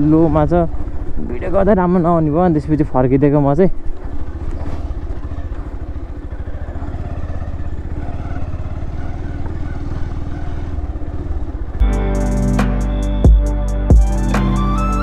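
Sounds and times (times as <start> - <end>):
motorcycle engine running: 0.0 - 14.6
music: 11.8 - 15.0.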